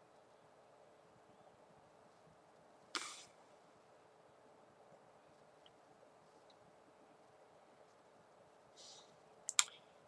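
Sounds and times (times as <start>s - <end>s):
soft brief hiss: 2.9s - 3.4s
sharp clicks: 9.4s - 9.8s.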